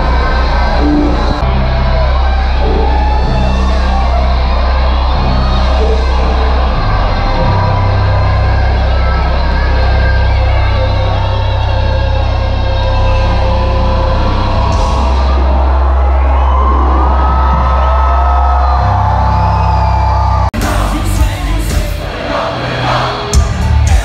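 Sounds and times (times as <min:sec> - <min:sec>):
crowd yelling and cheering: 0:00.0 - 0:24.0
live concert music: 0:00.0 - 0:24.0
person singing: 0:20.6 - 0:24.0.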